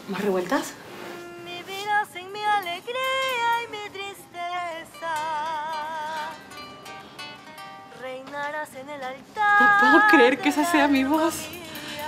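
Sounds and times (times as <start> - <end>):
woman singing with vibrato: 0.0 - 6.6, 7.9 - 12.0
plucked-string accompaniment: 1.0 - 12.0.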